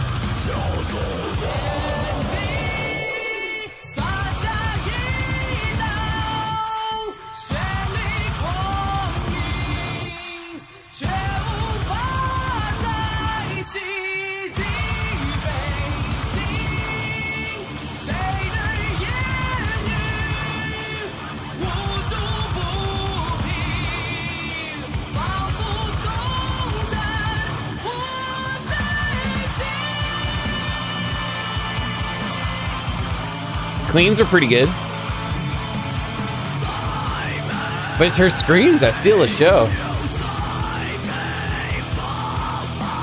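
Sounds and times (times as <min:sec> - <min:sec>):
metalcore song playing: 0:00.0 - 0:06.7, 0:28.6 - 0:42.8.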